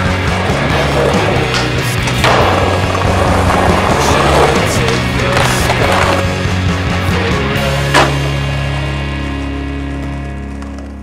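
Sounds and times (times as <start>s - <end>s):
skateboard wheels rolling: 0.0s - 6.6s, 9.3s - 11.0s
rock music: 0.0s - 11.0s
skateboard clacks: 0.8s - 6.3s, 9.6s - 11.0s.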